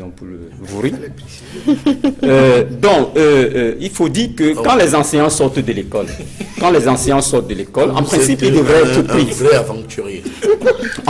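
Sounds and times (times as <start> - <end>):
man chuckling: 10.2 - 11.0.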